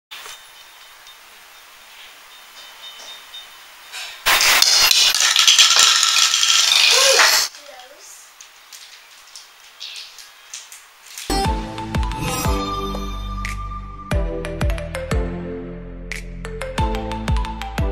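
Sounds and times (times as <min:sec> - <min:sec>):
plastic toy pins clattering: 0:04.3 - 0:11.3.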